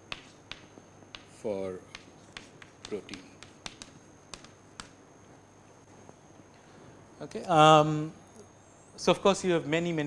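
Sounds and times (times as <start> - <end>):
faint steady high whine: 0.0 - 10.0.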